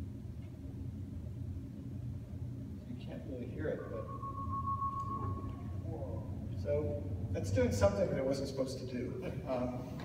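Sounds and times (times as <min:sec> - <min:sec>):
low hum: 0:00.0 - 0:09.5
high-pitched tone: 0:03.6 - 0:07.3.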